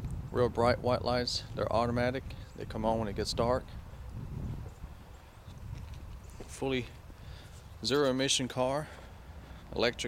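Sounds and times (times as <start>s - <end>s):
footsteps on concrete: 4.5s - 10.0s.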